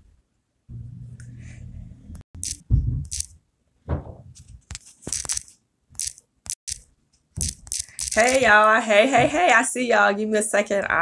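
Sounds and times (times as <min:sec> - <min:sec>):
crackling handling noise on microphone: 0:04.3 - 0:06.2.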